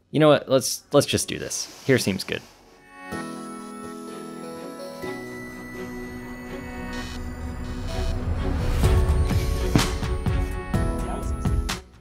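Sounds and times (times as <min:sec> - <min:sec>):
background music: 0:02.6 - 0:12.0.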